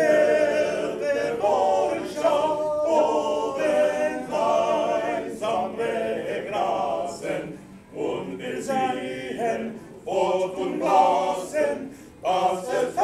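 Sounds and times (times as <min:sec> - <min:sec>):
male choir singing a cappella: 0:00.0 - 0:13.0.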